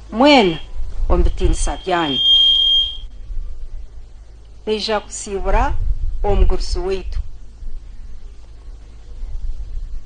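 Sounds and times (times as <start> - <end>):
microphone feedback ringing: 0.4 - 3.2.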